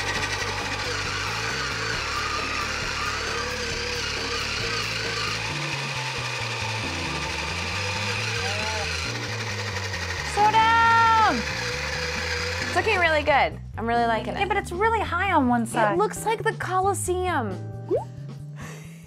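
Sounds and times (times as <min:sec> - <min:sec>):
small electric motors buzzing: 0:00.0 - 0:13.2
background music: 0:00.0 - 0:19.0.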